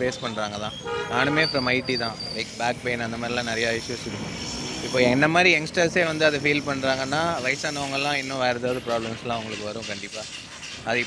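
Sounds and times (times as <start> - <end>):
man talking: 0.0 - 4.2, 4.8 - 10.2
vehicle engine hum: 0.0 - 9.7.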